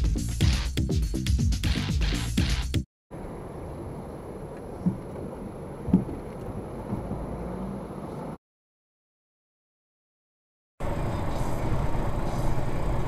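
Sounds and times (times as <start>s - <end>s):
car cabin rumble: 3.2s - 8.4s
low thumps: 4.8s - 7.4s.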